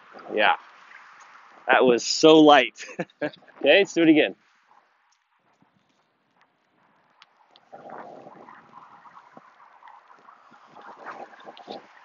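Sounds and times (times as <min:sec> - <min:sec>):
wind buffeting microphone: 0:05.4 - 0:12.0.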